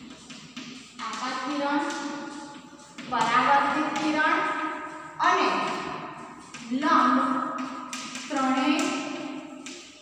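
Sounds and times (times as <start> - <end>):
chalk tapping on blackboard: 0.0 - 10.0.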